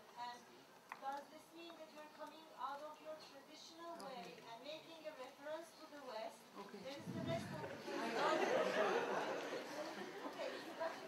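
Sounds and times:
audience chatter: 6.7s - 11.0s.

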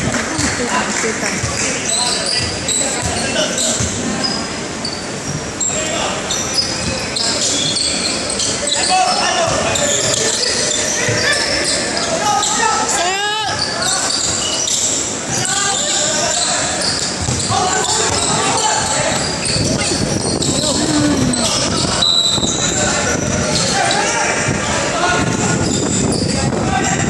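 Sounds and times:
sneakers squeaking: 1.4s - 12.9s, 13.5s - 24.1s, 25.6s - 26.4s
basketball bouncing: 17.2s - 18.3s.

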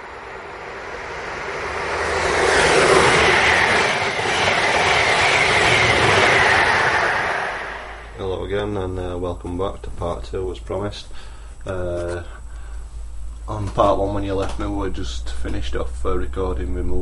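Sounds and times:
passenger train passing: 0.0s - 8.5s.

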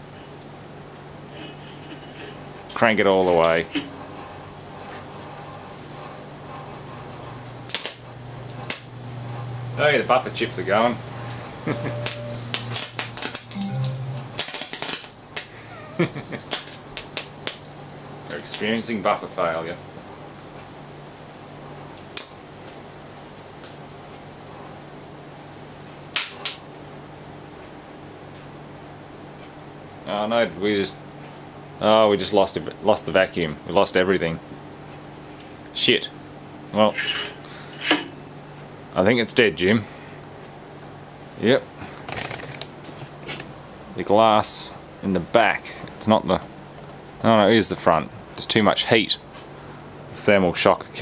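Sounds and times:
low electrical hum: 0.0s - 51.0s
high-voltage arc crackling: 3.4s - 26.7s.

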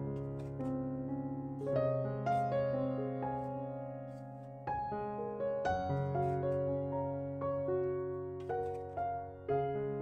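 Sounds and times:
soft piano music: 0.0s - 10.0s.

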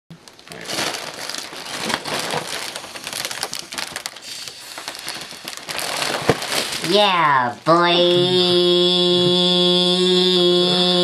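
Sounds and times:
foil balloon crinkling: 0.2s - 8.6s.

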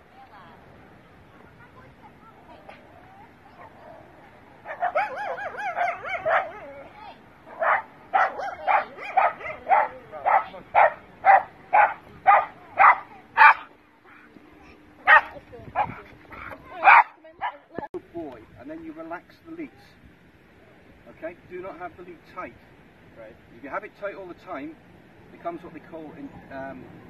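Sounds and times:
dog barking: 4.6s - 6.8s, 7.5s - 13.7s, 15.0s - 17.6s.

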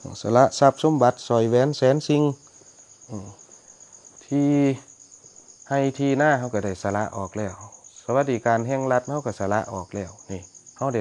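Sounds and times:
crickets trilling: 0.0s - 11.0s
man speaking: 3.1s - 3.4s, 4.2s - 4.9s, 5.7s - 11.0s.

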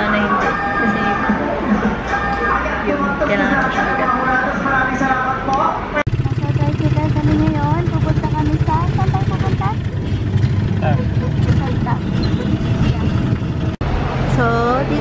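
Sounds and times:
voices: 0.0s - 15.0s
small motorcycle engine running: 6.1s - 13.8s.

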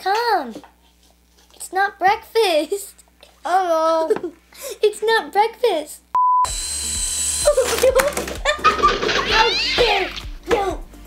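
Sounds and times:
background music: 6.5s - 11.0s
children laughing and squealing: 7.4s - 10.2s
high wavering cry: 8.4s - 10.2s.

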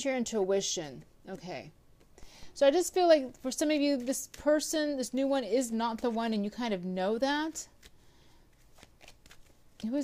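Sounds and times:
woman speaking: 0.0s - 1.8s, 2.6s - 7.8s, 9.8s - 10.0s
cards being shuffled: 7.4s - 10.0s.

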